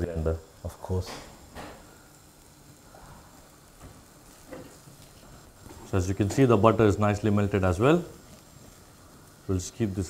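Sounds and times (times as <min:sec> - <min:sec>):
butter sizzling in a pan: 0:00.0 - 0:10.0.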